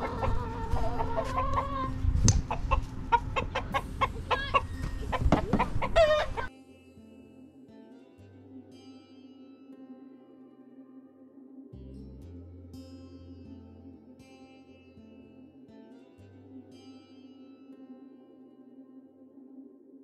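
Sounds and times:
chickens clucking and squawking: 0.0s - 6.5s
faint music: 0.0s - 20.0s.

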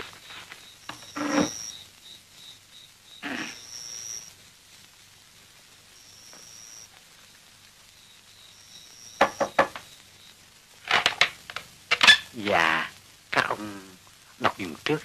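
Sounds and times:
night insects chirping: 0.0s - 15.0s.

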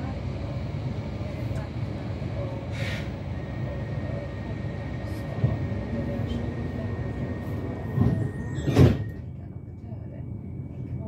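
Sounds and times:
train doors shutting thump: 7.9s - 9.2s.

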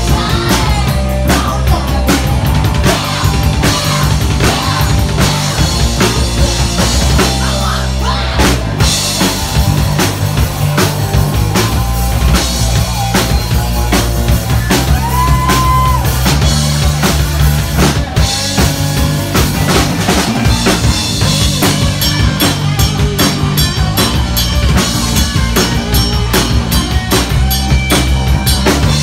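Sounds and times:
bass guitar: 0.0s - 29.0s
distorted electric guitars: 0.0s - 29.0s
drum kit: 0.0s - 29.0s.

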